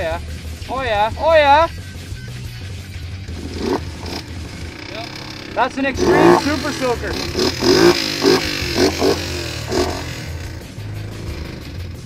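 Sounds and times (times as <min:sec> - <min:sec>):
atv engine idling: 0:00.0 - 0:12.0.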